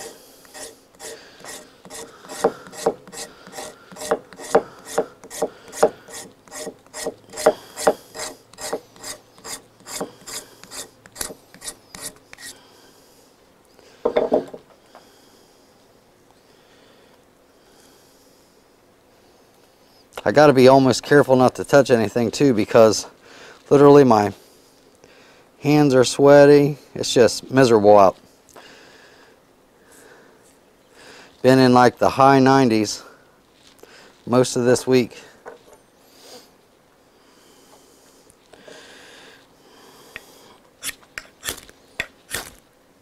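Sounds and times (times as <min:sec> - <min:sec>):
knife scraping wood shavings: 0:00.0 - 0:12.6, 0:40.8 - 0:42.6
short rub: 0:00.0 - 0:12.6.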